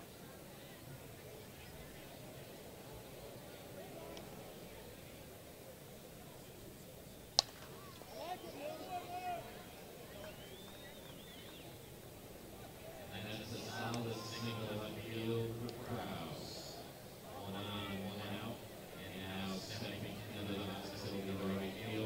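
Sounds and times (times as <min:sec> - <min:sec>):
ballpark background noise: 0:00.0 - 0:22.0
voices shouting: 0:07.6 - 0:11.8, 0:12.6 - 0:16.2.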